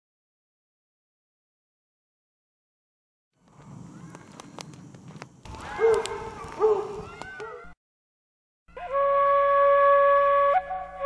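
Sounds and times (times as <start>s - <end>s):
sharp clicks: 3.4s - 6.6s
held flute note: 8.7s - 11.0s.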